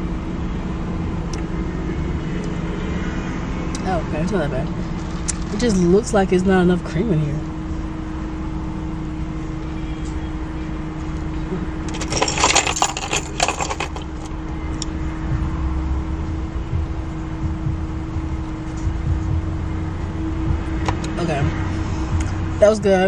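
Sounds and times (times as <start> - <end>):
low car interior hum: 0.0 - 23.0.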